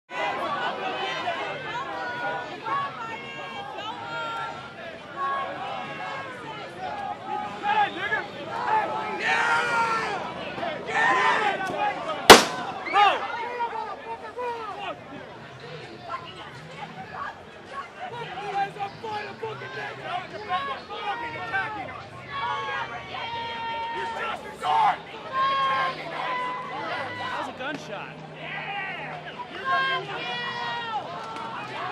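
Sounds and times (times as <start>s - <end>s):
crowd shouting and talking: 0.1s - 31.9s
loud gunshot: 12.3s - 12.8s.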